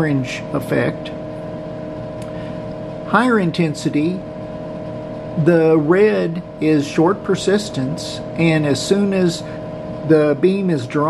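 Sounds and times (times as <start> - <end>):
computer machine hum: 0.0 - 11.0.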